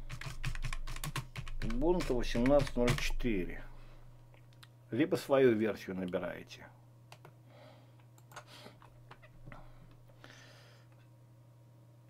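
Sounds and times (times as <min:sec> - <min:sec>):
low electrical hum: 0:00.0 - 0:12.0
computer mouse clicks: 0:08.1 - 0:08.5.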